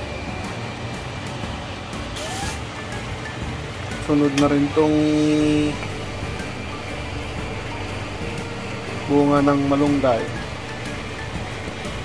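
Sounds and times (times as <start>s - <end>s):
steady low hum: 0.0s - 12.0s
lid lifting hiss: 2.1s - 2.7s.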